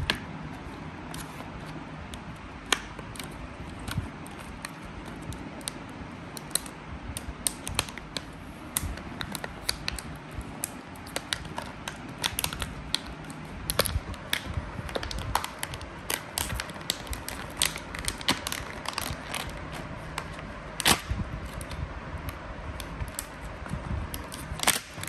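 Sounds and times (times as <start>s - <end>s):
plastic packaging crinkling: 7.4s - 21.8s, 22.8s - 25.0s.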